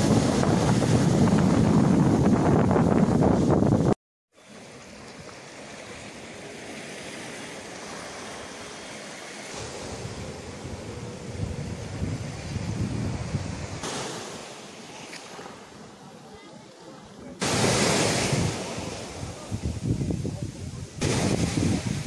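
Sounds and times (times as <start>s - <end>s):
wind on microphone: 0.0s - 4.0s, 9.5s - 14.3s, 17.5s - 22.0s
surf breaking on beach: 0.0s - 15.9s, 17.3s - 22.0s.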